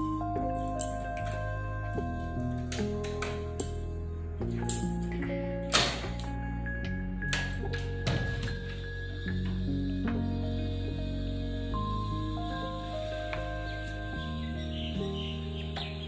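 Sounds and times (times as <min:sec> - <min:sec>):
gentle background music: 0:00.0 - 0:16.0.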